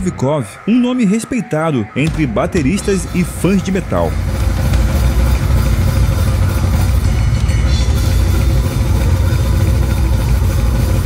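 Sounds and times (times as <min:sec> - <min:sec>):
fast dense drumming: 0:02.1 - 0:11.0
live metal band playing: 0:02.1 - 0:11.0.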